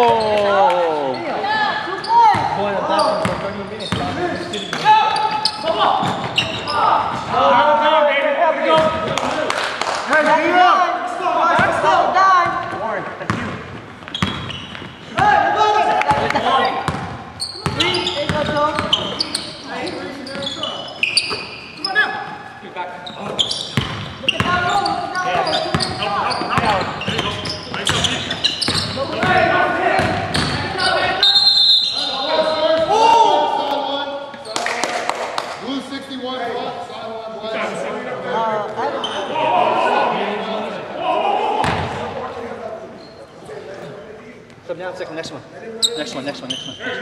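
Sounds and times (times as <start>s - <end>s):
players calling out: 10.2s - 34.8s.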